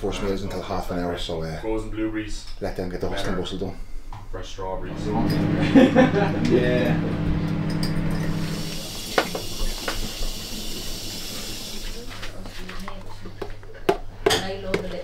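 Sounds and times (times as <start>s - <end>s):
utensils clinking on a counter: 13.3s - 15.0s.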